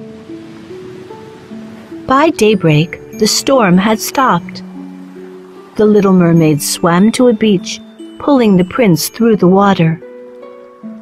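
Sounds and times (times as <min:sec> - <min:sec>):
ocean waves rushing: 0:00.0 - 0:11.0
soft background music: 0:00.0 - 0:11.0.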